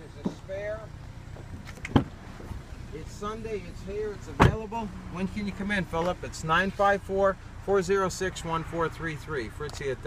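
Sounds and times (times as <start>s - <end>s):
car door shutting thump: 1.7s - 2.2s, 4.4s - 4.7s.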